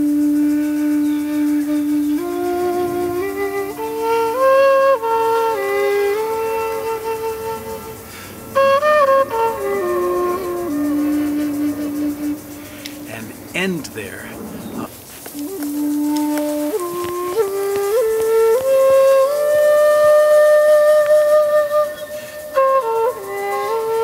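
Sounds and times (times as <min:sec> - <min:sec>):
bamboo flute playing a scale: 0:00.0 - 0:13.5, 0:15.2 - 0:24.0.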